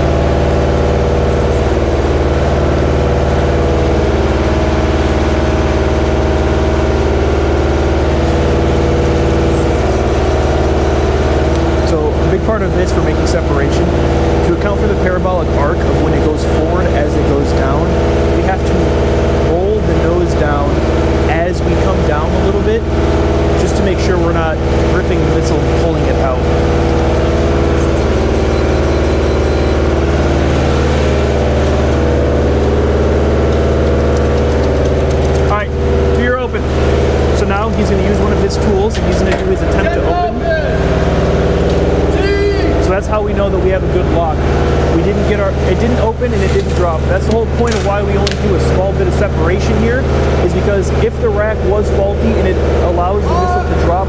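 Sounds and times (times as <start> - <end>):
truck engine humming: 0.0 - 54.0
voices talking: 0.0 - 54.0.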